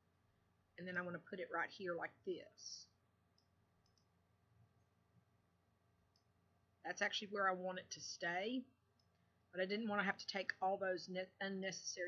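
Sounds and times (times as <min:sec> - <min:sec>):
computer mouse clicks: 0:03.3 - 0:04.2.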